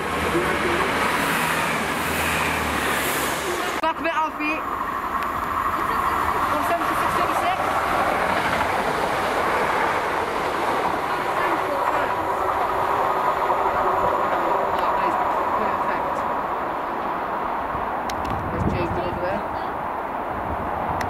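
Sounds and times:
diesel engines: 0.0s - 21.0s
train wheels rumbling on rails: 0.0s - 21.0s.

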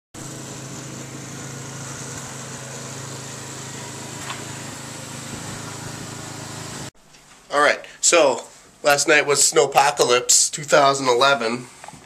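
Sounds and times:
small engine running: 0.2s - 6.9s.

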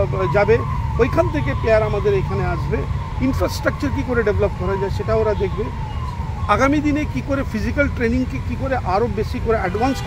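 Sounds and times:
man speaking: 6.5s - 10.0s.

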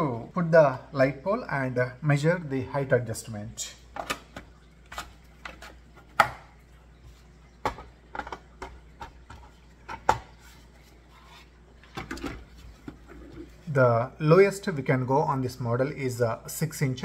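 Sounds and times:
plastic clicks and knocks: 3.9s - 6.4s, 7.6s - 10.3s.

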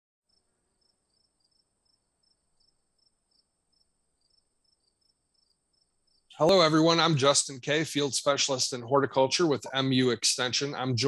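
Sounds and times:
faint ticks: 0.3s - 6.4s
faint high-pitched whine: 6.1s - 11.0s.

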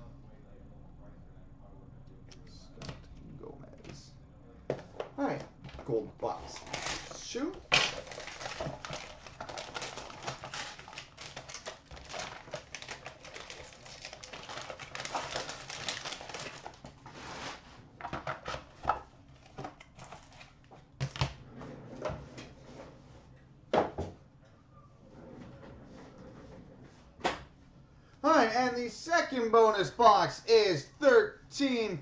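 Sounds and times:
foil and paper crinkling: 6.3s - 17.6s, 19.4s - 20.7s.

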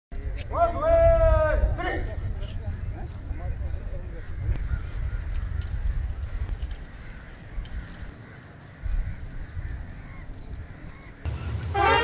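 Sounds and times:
brass band playing: 11.3s - 12.0s.

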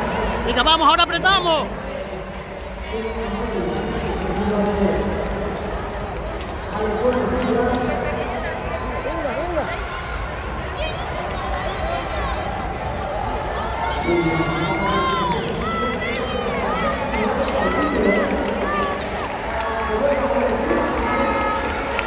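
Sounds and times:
crowd babble echoing: 0.0s - 22.0s
crowd calls and shouts: 0.0s - 22.0s.

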